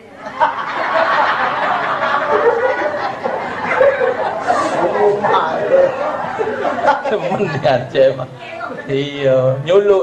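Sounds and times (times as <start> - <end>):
audience laughing: 0.2 - 7.9.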